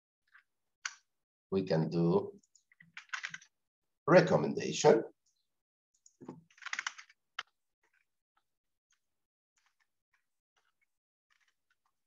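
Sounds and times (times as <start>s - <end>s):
typing on computer keyboard: 2.7s - 3.5s, 6.5s - 7.1s.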